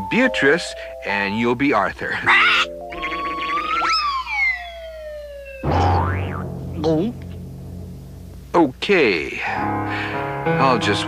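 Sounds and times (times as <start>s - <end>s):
background music: 0.0s - 11.0s
cartoon boing: 2.2s - 4.8s, 5.5s - 7.4s
cartoon whistle swooping: 2.3s - 6.4s.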